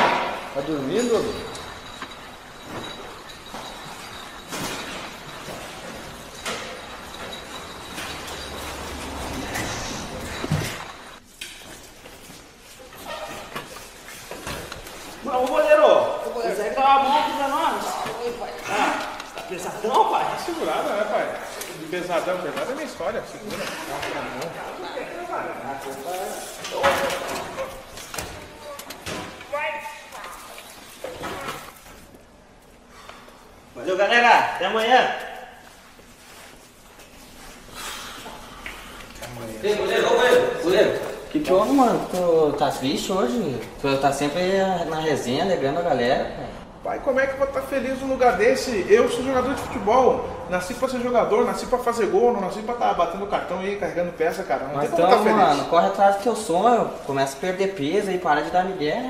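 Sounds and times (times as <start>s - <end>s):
machinery noise: 0.0s - 11.2s
men's wordless voices: 39.2s - 59.0s.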